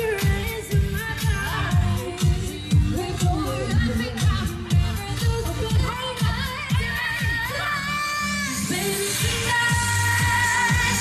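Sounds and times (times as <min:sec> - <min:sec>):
dance beat with kick drum: 0:00.0 - 0:07.6, 0:09.2 - 0:11.0
woman singing: 0:00.0 - 0:11.0.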